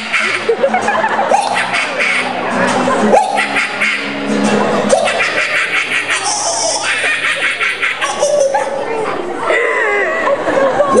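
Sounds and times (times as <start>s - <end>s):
acoustic guitar chords: 0.0s - 7.0s
audience laughter: 0.0s - 11.0s
man vocalizing: 4.9s - 8.5s.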